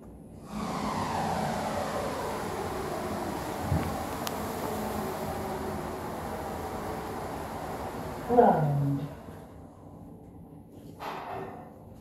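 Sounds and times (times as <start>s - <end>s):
lift car running noise: 0.3s - 10.1s.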